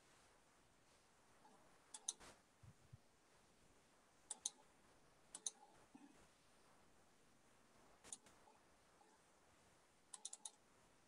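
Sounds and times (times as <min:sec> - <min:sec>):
computer mouse clicks: 0:01.9 - 0:02.4, 0:04.2 - 0:04.7, 0:05.3 - 0:05.7, 0:08.0 - 0:08.4, 0:10.1 - 0:10.6.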